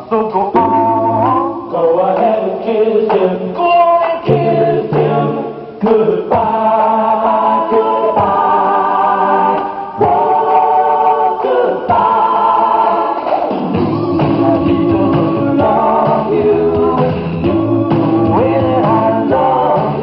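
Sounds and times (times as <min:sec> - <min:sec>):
group singing long notes: 0:00.0 - 0:20.0.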